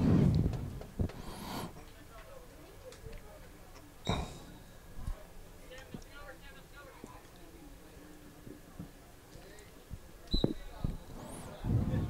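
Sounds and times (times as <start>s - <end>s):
breath exhaled on microphone: 1.1s - 1.8s.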